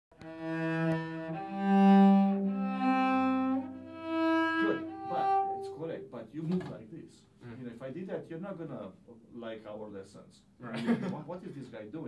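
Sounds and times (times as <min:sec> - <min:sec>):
bowed cello notes: 0:00.2 - 0:06.2.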